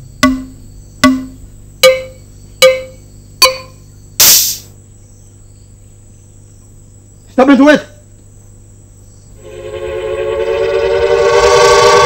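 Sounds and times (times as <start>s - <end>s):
struck drum notes: 0.0s - 4.7s.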